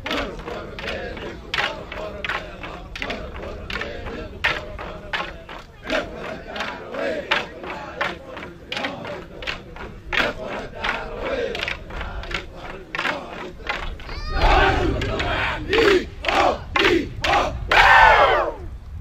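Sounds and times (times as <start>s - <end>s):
wooden sticks clacking: 0.0s - 14.2s
men chanting: 0.0s - 18.6s
men shouting: 12.6s - 18.6s.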